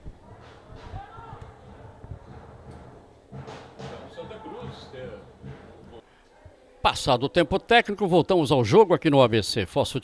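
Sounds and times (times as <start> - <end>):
stadium background noise: 0.0 - 9.4.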